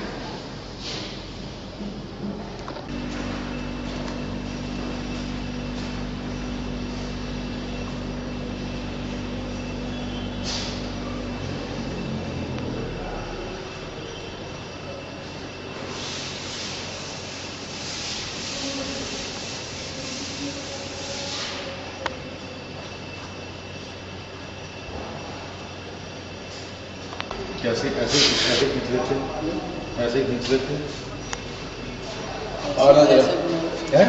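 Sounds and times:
hissy bursts: 2.9s - 11.7s, 15.2s - 22.0s, 28.0s - 29.3s
mortiser machine running: 2.9s - 21.3s.

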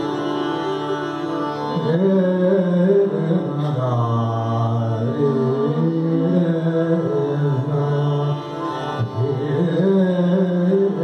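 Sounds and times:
sitar: 0.0s - 11.0s
man singing long held notes: 1.7s - 11.0s.

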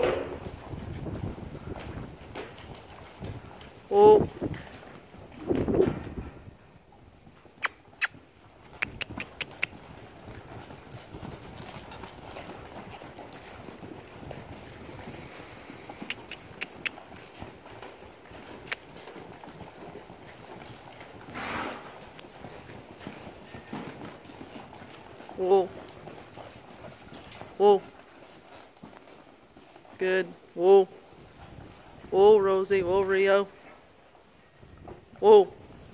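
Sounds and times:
hooves on soft sand: 0.0s - 7.5s, 8.4s - 35.9s.

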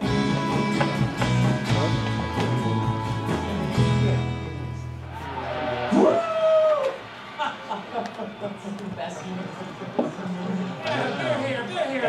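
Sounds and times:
background music: 0.0s - 11.8s
long rising call: 5.0s - 7.9s.

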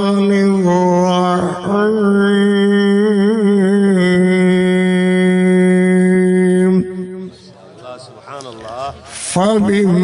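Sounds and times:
man reciting melodically: 0.0s - 10.0s.

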